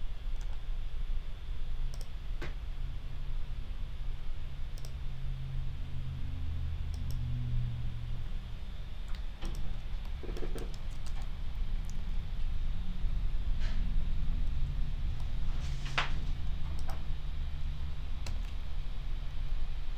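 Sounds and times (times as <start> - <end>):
steady low hum: 0.0 - 19.9
computer mouse clicks: 0.4 - 0.6, 1.9 - 2.2, 4.8 - 5.0, 6.9 - 7.2, 9.1 - 12.0, 16.6 - 17.0, 18.2 - 18.6.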